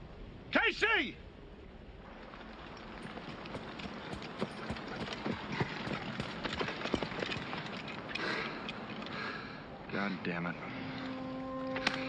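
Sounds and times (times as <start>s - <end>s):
running footsteps on sand: 2.1s - 8.0s.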